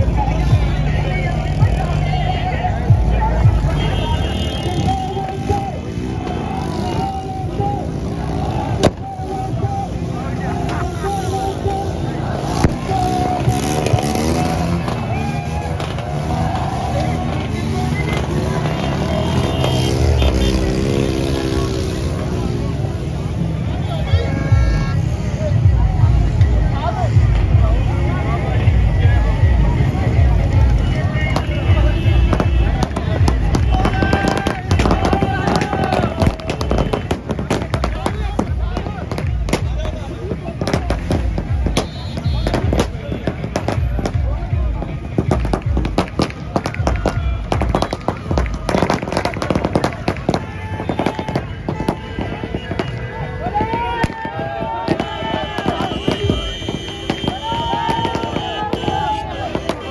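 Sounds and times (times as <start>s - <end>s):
crowd voices: 0.0s - 59.9s
firecrackers cracking: 10.5s - 22.2s, 30.6s - 59.9s.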